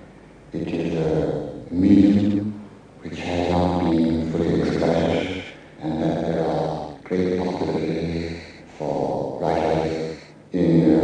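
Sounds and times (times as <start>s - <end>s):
processed chant-like vocal tones: 3.0s - 11.0s.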